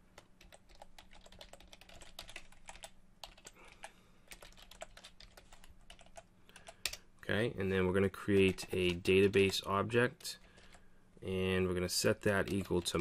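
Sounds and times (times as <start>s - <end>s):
faint keyboard typing: 0.1s - 7.1s, 8.0s - 10.9s, 12.0s - 13.0s.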